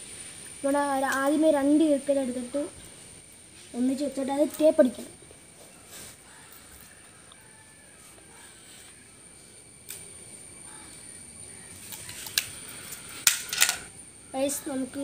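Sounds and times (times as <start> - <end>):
faint steady high whine: 0.0 - 15.0
sharp clicks and crackles of handling: 11.8 - 13.9.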